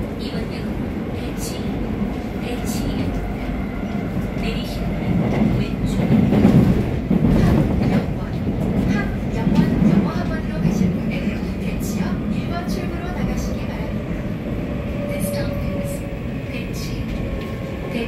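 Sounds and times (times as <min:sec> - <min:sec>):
subway train wheels rumbling: 0:00.0 - 0:18.0.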